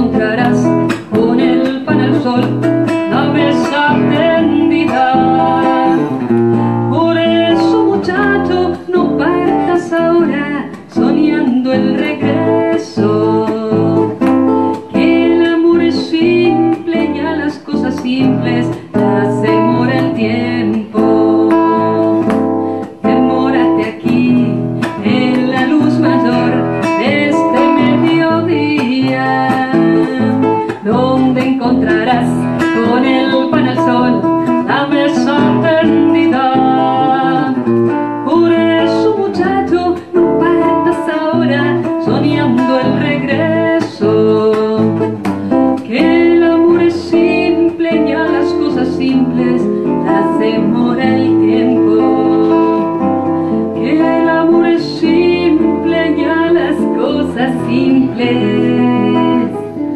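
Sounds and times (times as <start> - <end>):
classical guitar: 0.0 - 59.9
woman singing: 0.0 - 59.9.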